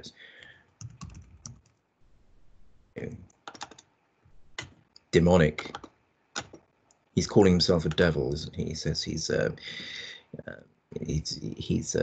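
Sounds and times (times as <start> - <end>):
computer keyboard keystrokes: 0.8 - 1.8, 3.5 - 3.9, 5.7 - 6.6.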